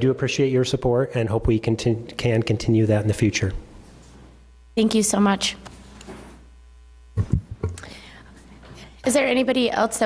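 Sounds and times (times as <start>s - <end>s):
thumps and rustles on microphone: 7.2s - 7.8s.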